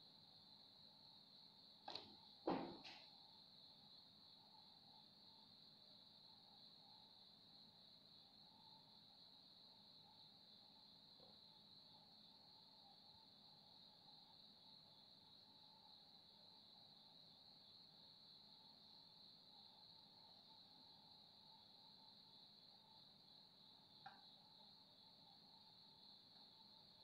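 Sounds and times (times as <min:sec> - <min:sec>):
crickets chirping: 0:00.0 - 0:27.0.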